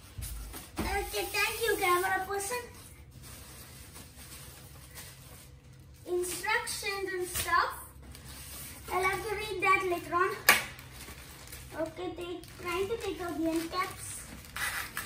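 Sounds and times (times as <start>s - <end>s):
room hum: 0.0s - 15.0s
child's voice: 0.8s - 2.8s, 6.0s - 8.0s, 8.9s - 10.5s, 11.7s - 14.4s.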